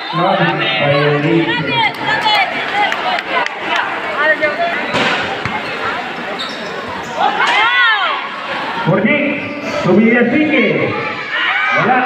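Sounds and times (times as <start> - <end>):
players and spectators shouting: 0.0 - 12.0.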